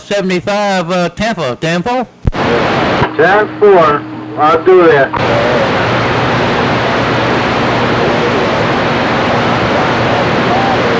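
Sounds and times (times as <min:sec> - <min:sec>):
radio static hiss: 0:02.2 - 0:10.9
faint wavering voices: 0:03.5 - 0:06.2, 0:07.2 - 0:10.9.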